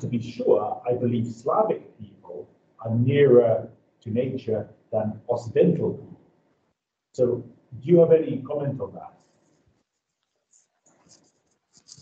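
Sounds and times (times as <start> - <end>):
faint clicks and crackle: 9.0 - 12.0.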